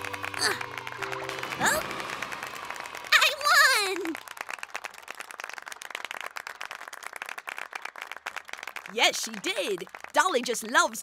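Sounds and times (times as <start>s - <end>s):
crowd applauding: 0.0s - 11.0s.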